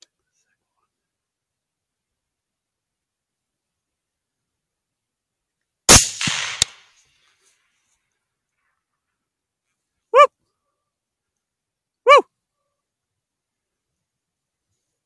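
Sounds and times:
rifle shots cracking: 0:05.9 - 0:06.9
dog barks: 0:10.1 - 0:10.3, 0:12.0 - 0:12.3.

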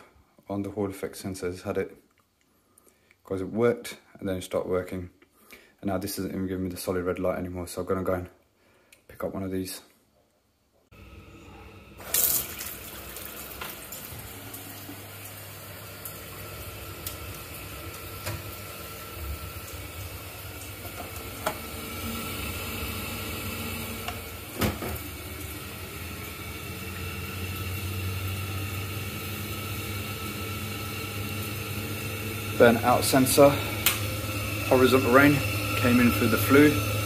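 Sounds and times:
tap water running into sink: 0:11.8 - 0:37.0.

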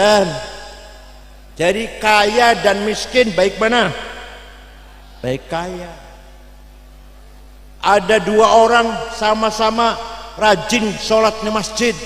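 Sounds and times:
man talking: 0:00.0 - 0:00.7, 0:01.6 - 0:04.3, 0:05.2 - 0:06.2, 0:07.8 - 0:12.0
electrical mains hum: 0:00.0 - 0:12.0.

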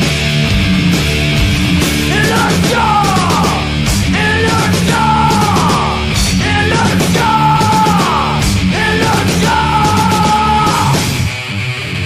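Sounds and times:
bass guitar: 0:00.0 - 0:12.0
distorted electric guitars: 0:00.0 - 0:12.0
drums: 0:00.0 - 0:12.0
person yelling vocals: 0:02.1 - 0:11.0.

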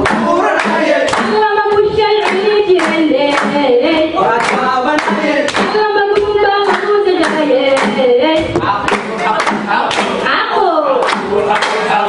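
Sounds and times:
hand claps: 0:00.0 - 0:03.7, 0:04.3 - 0:10.2, 0:11.0 - 0:12.0
group singing folk song: 0:00.0 - 0:12.0.

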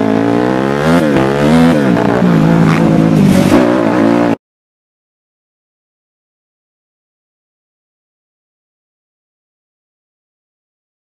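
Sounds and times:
dirt bike engine running: 0:00.0 - 0:04.4.

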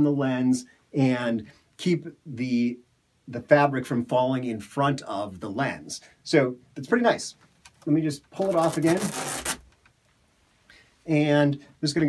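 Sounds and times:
cloth rustling: 0:07.4 - 0:09.8.

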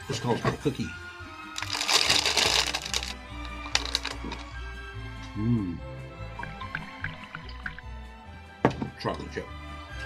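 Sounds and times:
plastic bag crinkling: 0:01.6 - 0:04.5.

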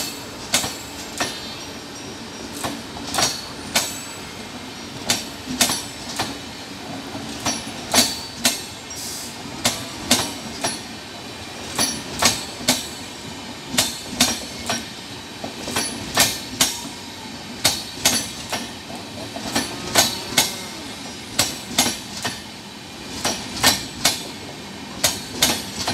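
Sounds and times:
train wheels clacking over rail joints: 0:00.0 - 0:01.5, 0:02.4 - 0:04.2, 0:04.9 - 0:11.0, 0:11.6 - 0:13.1, 0:13.7 - 0:25.9
train running rumble: 0:00.0 - 0:25.9.

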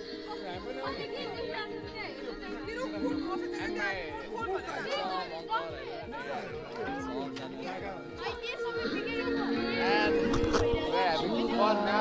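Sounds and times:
background music with held notes: 0:00.0 - 0:12.0
people chattering: 0:00.0 - 0:12.0.

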